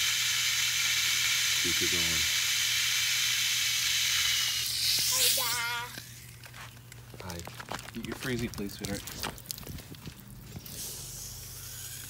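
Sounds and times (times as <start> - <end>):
water running from a hose: 0.0 - 6.2.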